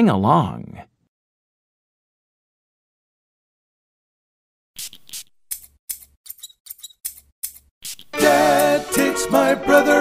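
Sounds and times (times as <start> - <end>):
scissors snipping: 4.8 - 8.7.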